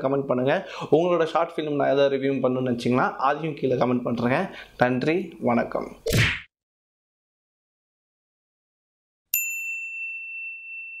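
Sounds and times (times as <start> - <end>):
bright ding: 9.3 - 11.0.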